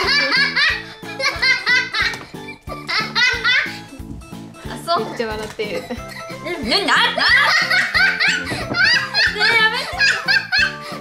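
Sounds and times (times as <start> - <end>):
girls giggling: 0.0 - 4.3, 5.6 - 11.0
background music with beat: 0.0 - 11.0.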